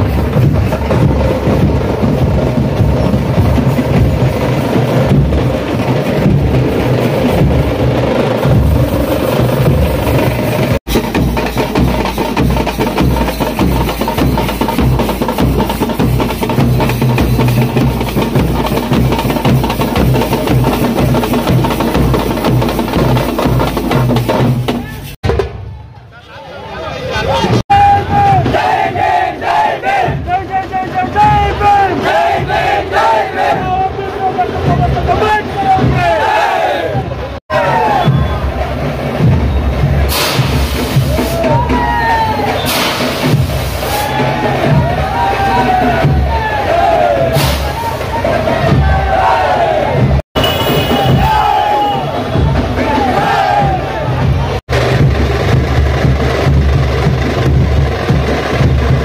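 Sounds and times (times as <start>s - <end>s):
procession drums beating: 0.0s - 25.6s, 27.5s - 36.8s, 37.5s - 59.0s
crowd of men shouting and cheering: 25.8s - 39.0s, 41.1s - 42.7s, 43.8s - 54.6s.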